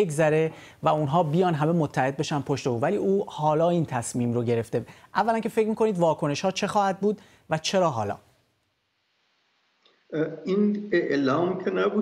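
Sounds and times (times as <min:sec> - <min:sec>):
man speaking: 0:00.0 - 0:08.3, 0:10.1 - 0:12.0.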